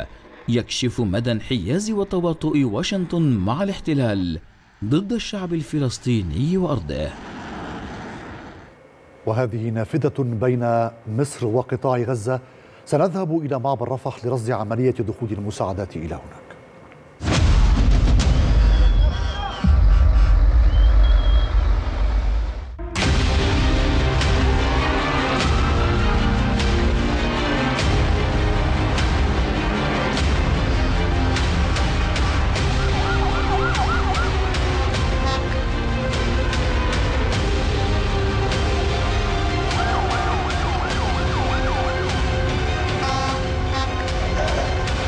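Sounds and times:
background music with steady beat: 0:22.8 - 0:45.0
siren wailing: 0:32.3 - 0:35.5, 0:39.3 - 0:44.0
thin high tone: 0:32.6 - 0:34.6.

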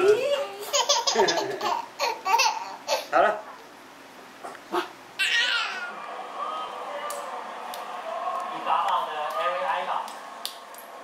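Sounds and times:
baby giggling: 0:00.6 - 0:03.1
baby squealing: 0:05.2 - 0:05.9.

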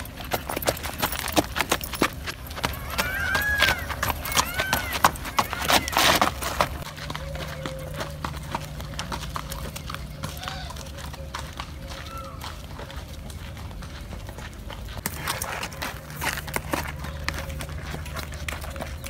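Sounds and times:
hoofbeats on dirt: 0:00.0 - 0:19.0
people's footsteps: 0:00.0 - 0:19.0.

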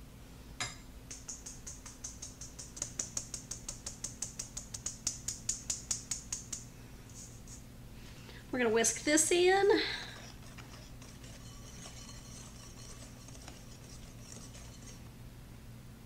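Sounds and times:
metal scoop tapping a sieve: 0:00.6 - 0:06.6, 0:10.2 - 0:15.0.

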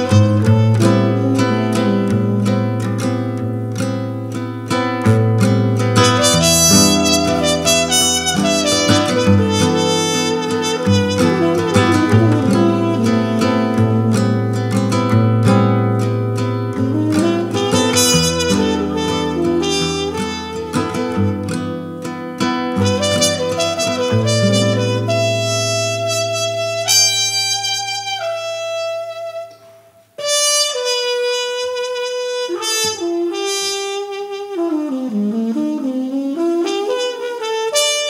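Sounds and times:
muted trumpet melody: 0:00.0 - 0:03.1, 0:06.0 - 0:38.0
strummed acoustic guitar: 0:00.0 - 0:29.1.

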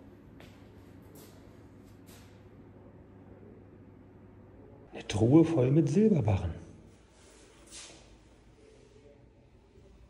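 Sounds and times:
soft scuffs: 0:00.4 - 0:02.5, 0:07.0 - 0:08.3.

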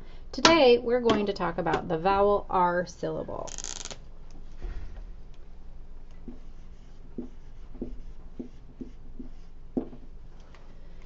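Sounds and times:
marker writing on whiteboard: 0:06.2 - 0:10.1.

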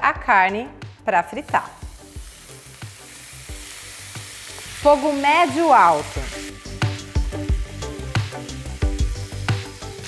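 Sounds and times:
meat sizzling in a frying pan: 0:01.2 - 0:10.0.

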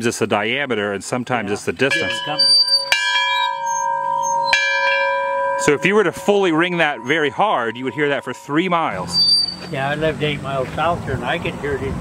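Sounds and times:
iron bell ringing: 0:01.9 - 0:10.3.

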